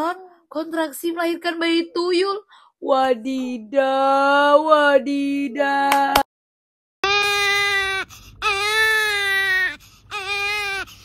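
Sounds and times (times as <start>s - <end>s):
baby crying: 7.0s - 11.0s.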